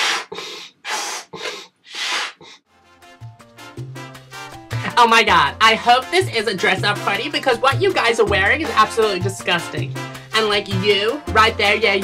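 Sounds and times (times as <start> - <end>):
person blowing up balloon: 0.0 - 2.7.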